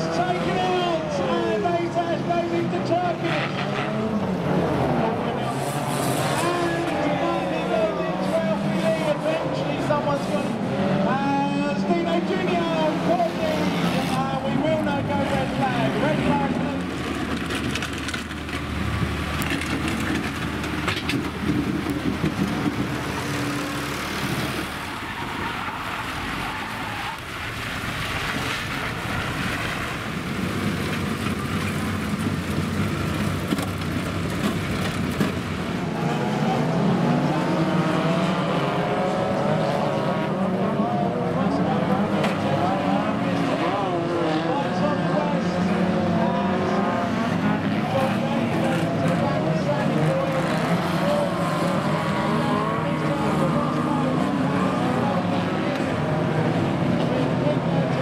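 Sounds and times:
racing car engines revving: 0.0 - 58.0
tractor engine running: 17.0 - 26.2.

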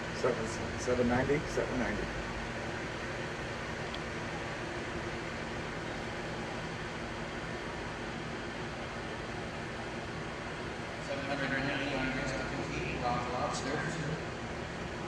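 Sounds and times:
faint low hum: 0.0 - 15.0.

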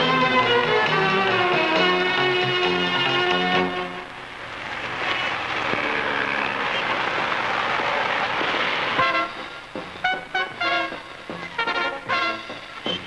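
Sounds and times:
brass film music: 0.0 - 5.6, 6.6 - 13.0
street traffic noise: 0.0 - 13.0
car horns tooting: 9.0 - 13.0.

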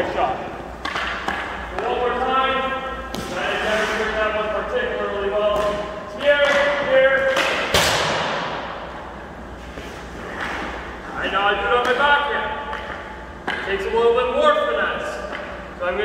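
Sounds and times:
hockey stick striking puck: 0.8 - 2.4, 3.1 - 4.2, 5.4 - 8.7, 9.8 - 10.9, 11.7 - 13.9.

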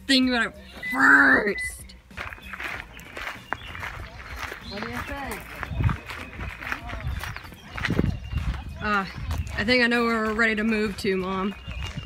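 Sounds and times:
people talking indistinctly: 0.1 - 12.0.

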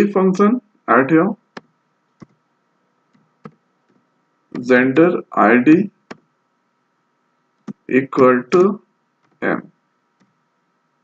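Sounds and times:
spoken syllable: 4.6 - 5.9, 7.7 - 8.8, 9.4 - 9.7.

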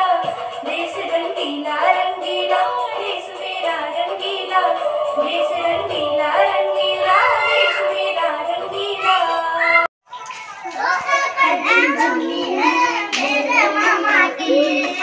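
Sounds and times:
girl singing into microphone: 0.0 - 9.9, 10.8 - 15.0
karaoke music: 0.0 - 9.9, 10.8 - 15.0.

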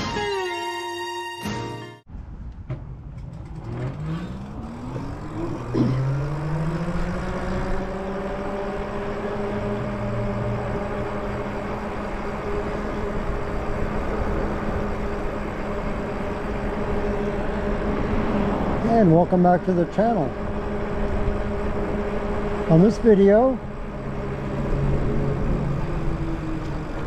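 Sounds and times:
road and wind noise: 2.1 - 27.0
electric bike motor whining: 3.2 - 27.0.

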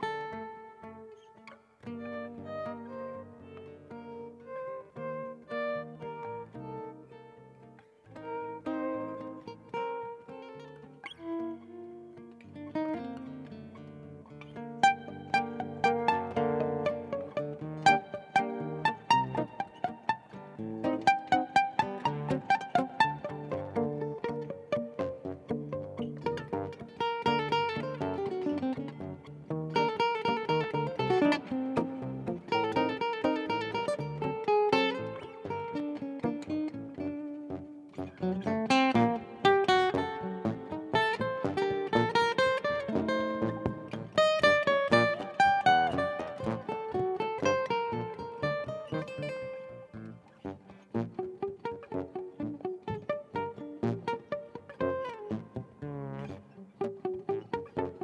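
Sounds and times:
acoustic guitar duet: 0.0 - 58.0.

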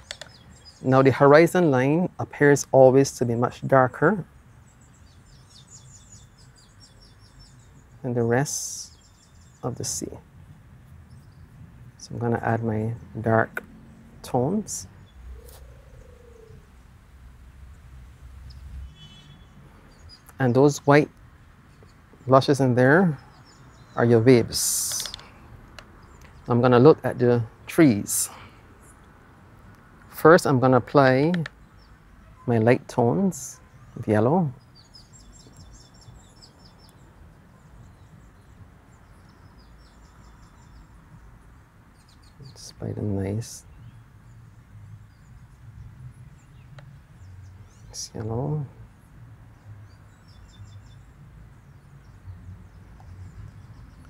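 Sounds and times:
click: 0.0 - 0.3
small birds chirping: 0.0 - 54.0.

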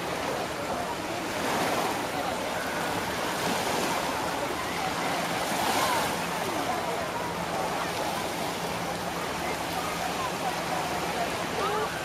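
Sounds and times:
faint distant voices: 0.0 - 12.0
waves washing onto shore: 0.0 - 12.0.

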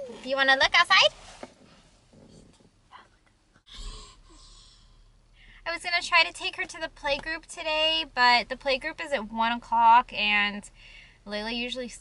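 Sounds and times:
faint shuffling: 0.0 - 3.2.

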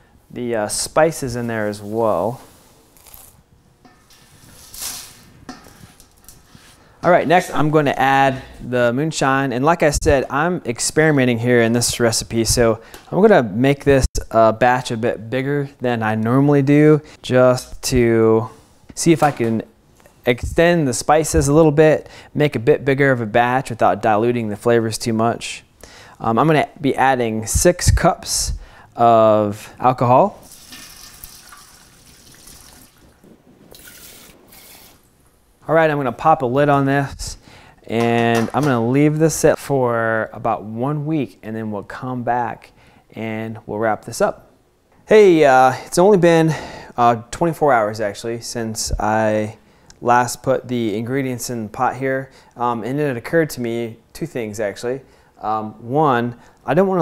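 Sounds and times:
liquid pouring into pot: 30.4 - 34.8
spices scraping off cutting board: 33.7 - 35.0.

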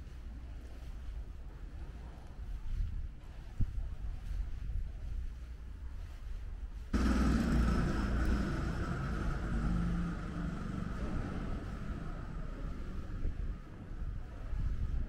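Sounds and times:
low rumble: 6.9 - 15.0
vehicle engine running: 7.0 - 13.6.

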